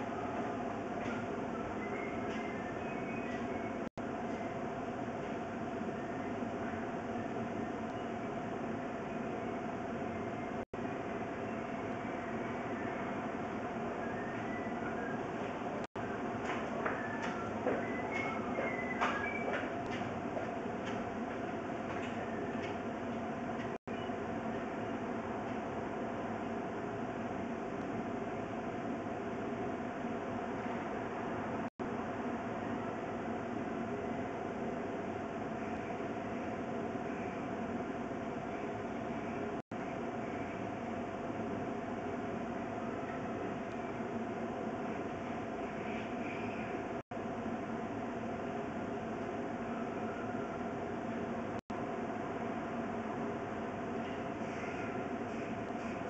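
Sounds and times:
constant hum: 0:00.0 - 0:56.0.

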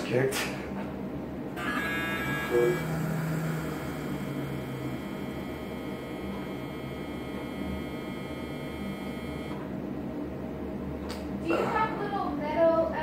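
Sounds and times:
electrical hum: 0:00.0 - 0:13.0
level tones: 0:01.6 - 0:09.7.

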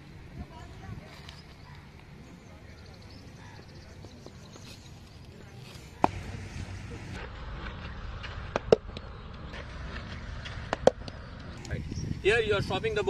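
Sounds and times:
outdoor background hum: 0:00.0 - 0:13.0.

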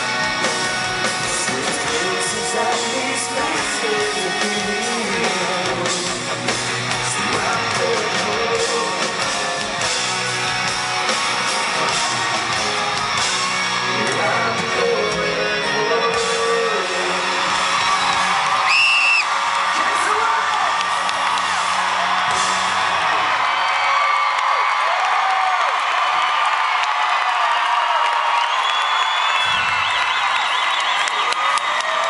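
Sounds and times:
crowd cheering and whooping: 0:00.0 - 0:14.7, 0:16.1 - 0:32.0
loud whistle: 0:17.8 - 0:19.4, 0:28.4 - 0:31.3.

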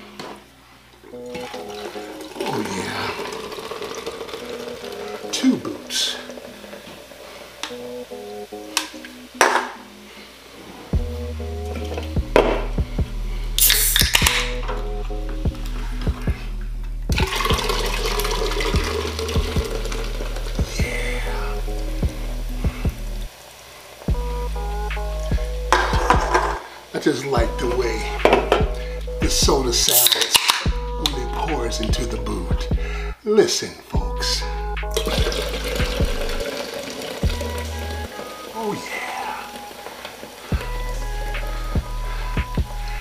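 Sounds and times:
soda pouring and fizzing: 0:01.0 - 0:09.3, 0:13.6 - 0:14.5, 0:17.1 - 0:27.3, 0:29.8 - 0:30.6, 0:34.9 - 0:42.4
cans clinking: 0:01.1 - 0:07.8, 0:08.7 - 0:09.8, 0:13.6 - 0:14.8, 0:17.2 - 0:20.6, 0:25.7 - 0:26.8, 0:29.8 - 0:31.2, 0:34.9 - 0:40.5
hip-hop beat with heavy bass: 0:11.0 - 0:23.3, 0:24.1 - 0:26.6, 0:27.4 - 0:33.2, 0:34.0 - 0:36.4, 0:37.2 - 0:38.8, 0:40.5 - 0:43.0.

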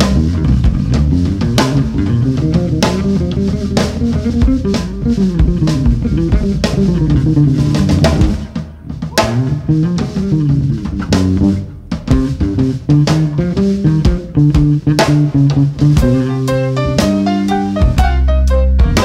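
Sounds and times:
drum kit hits: 0:00.0 - 0:19.0
electric bass line: 0:00.0 - 0:19.0.

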